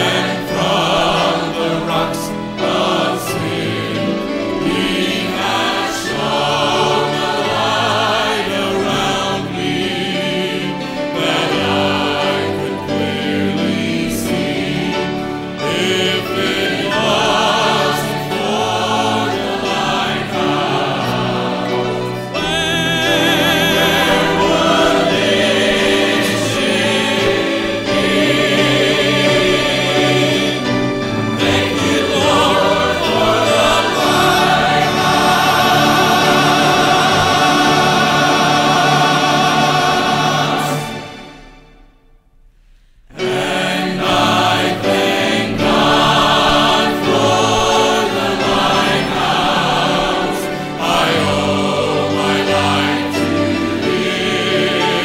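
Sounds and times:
choir singing gospel: 0:00.0 - 0:42.0, 0:43.1 - 0:55.0.

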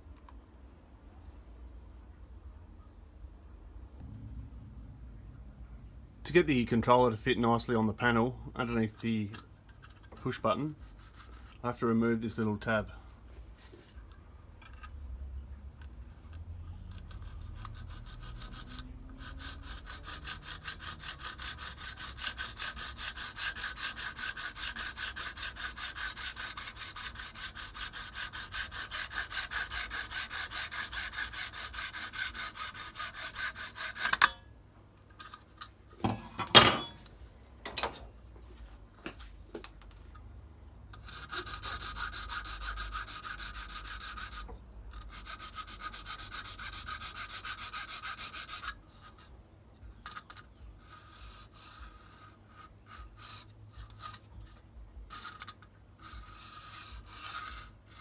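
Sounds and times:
file rasping plastic: 0:08.9 - 0:11.7, 0:16.9 - 0:34.4, 0:40.9 - 0:49.3, 0:50.0 - 0:58.0.

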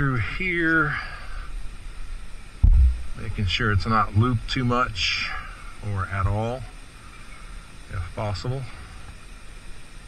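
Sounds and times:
dull low thump: 0:02.6 - 0:03.4.

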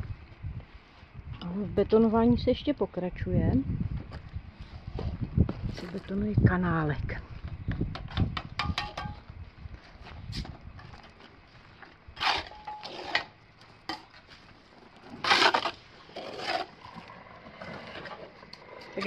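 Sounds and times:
trowel scraping wet concrete: 0:12.2 - 0:14.0, 0:14.9 - 0:19.0.

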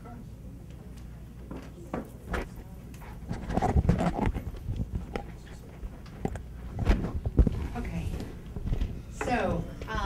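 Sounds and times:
microphone handling bumps and rubbing: 0:03.1 - 0:09.0.

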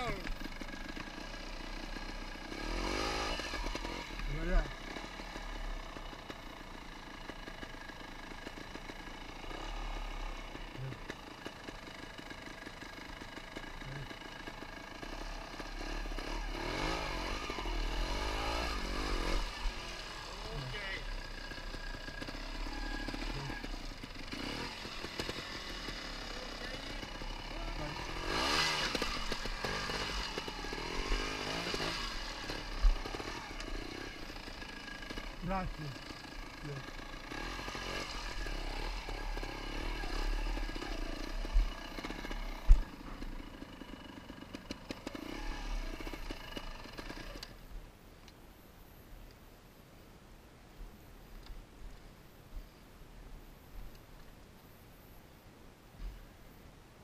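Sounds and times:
motorcycle engine revving: 0:00.0 - 0:47.7
voices: 0:20.2 - 0:21.2, 0:26.3 - 0:28.2, 0:35.3 - 0:36.9.

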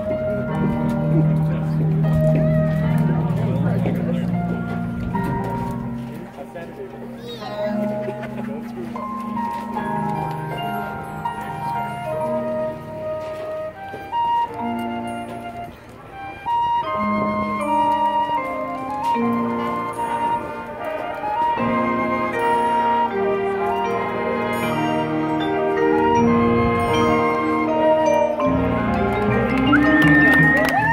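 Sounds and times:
marching band playing soft chords: 0:00.0 - 0:30.9
marching band brass chords: 0:16.8 - 0:30.9.

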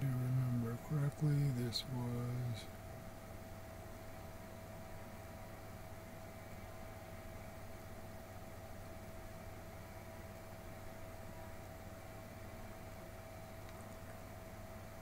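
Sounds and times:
low background hum and hiss: 0:00.0 - 0:15.0.

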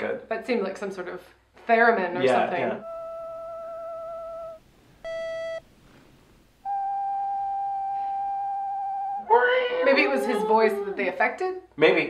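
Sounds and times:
crooning theremin-like voice: 0:06.7 - 0:11.0.

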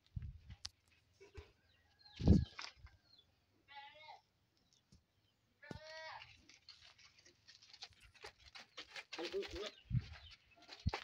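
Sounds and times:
goat bleating: 0:03.7 - 0:04.2.

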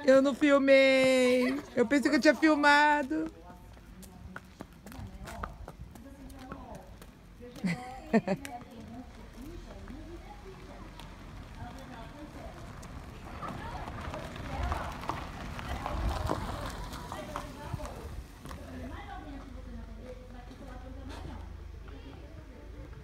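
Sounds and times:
pony hooves on gravel: 0:00.1 - 0:21.0.

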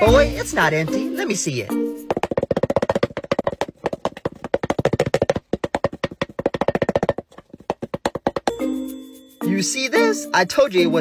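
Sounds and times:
fast ringing percussive clicks: 0:02.1 - 0:08.7.

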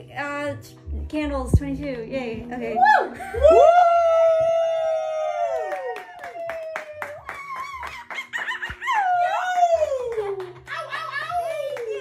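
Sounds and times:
voices cheering woooo: 0:02.8 - 0:08.0, 0:08.7 - 0:10.4
hand claps: 0:05.5 - 0:12.0.

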